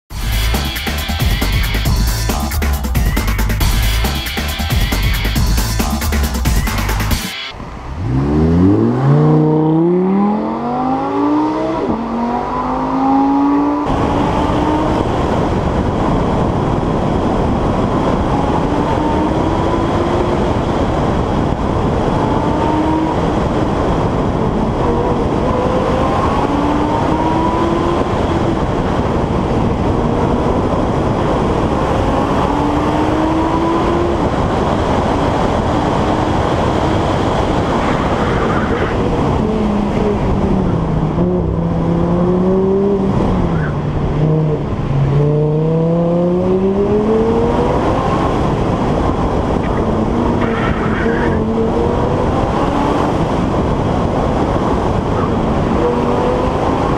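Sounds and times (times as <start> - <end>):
wind and road noise: 0.1 - 56.9
car engine accelerating hard: 6.4 - 56.9.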